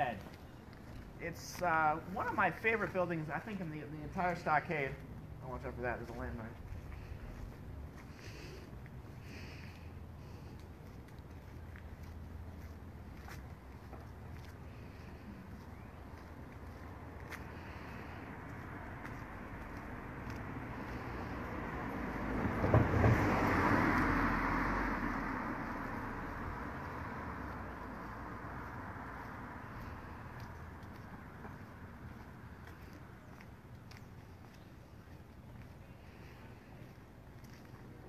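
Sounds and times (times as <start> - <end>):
car driving past: 16.9 - 32.9.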